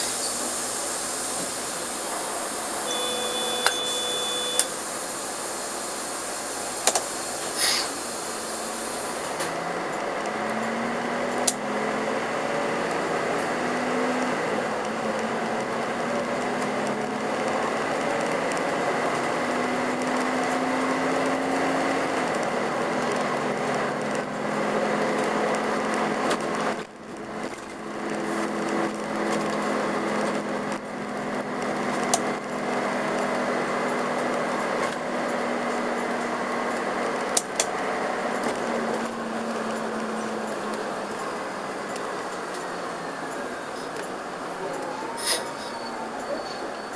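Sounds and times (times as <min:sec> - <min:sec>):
bus diesel engine: 0:00.0 - 0:46.9.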